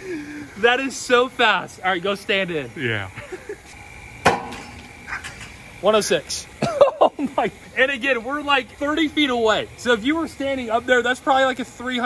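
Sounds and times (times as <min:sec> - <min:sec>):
pitching machine crack: 0:00.5 - 0:12.0.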